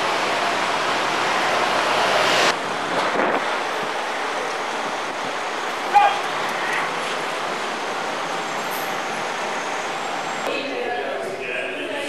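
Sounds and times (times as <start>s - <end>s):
outdoor background rush: 0.0s - 12.0s.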